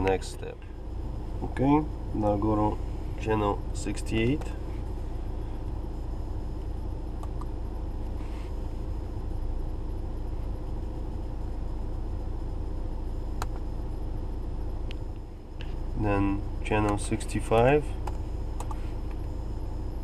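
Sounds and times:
diesel engine idling: 0.0 - 20.0.

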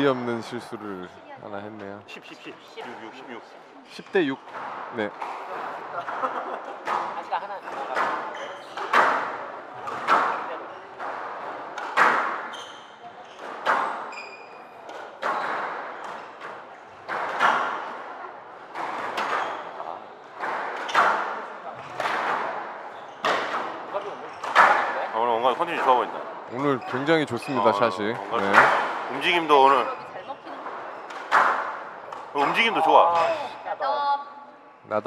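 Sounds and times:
squash ball cracks echoing: 7.8 - 12.5, 20.4 - 25.2, 30.6 - 33.6
short high squeak: 14.1 - 14.8.

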